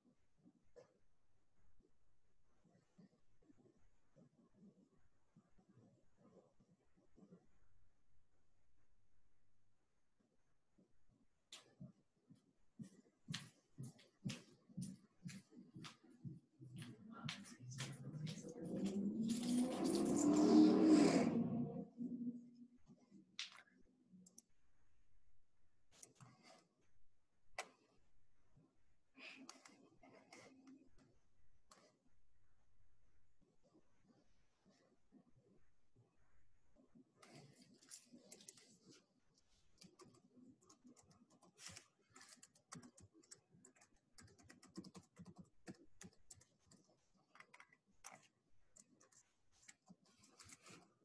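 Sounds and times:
typing on computer keyboard: 39.8s - 50.9s.

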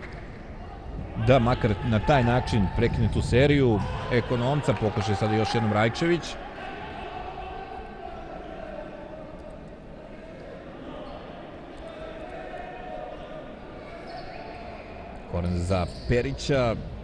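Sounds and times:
echoing hall ambience: 0.0s - 17.0s.

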